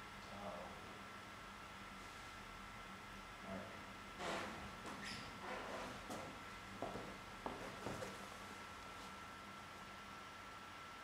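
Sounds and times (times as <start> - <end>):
light footsteps: 6.1 - 8.3.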